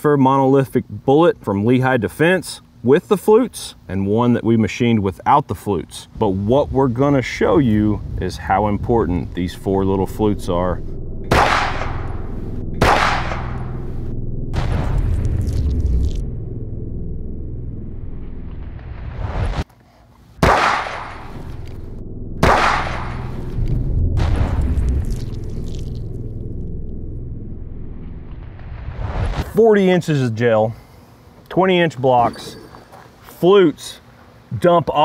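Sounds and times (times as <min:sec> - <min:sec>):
pistol shots with rolling echo: 0:11.3 - 0:13.9, 0:20.4 - 0:21.4, 0:22.4 - 0:23.4.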